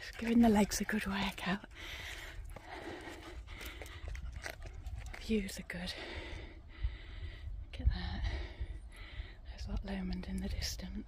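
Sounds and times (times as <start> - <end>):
person panting: 1.6 - 9.5.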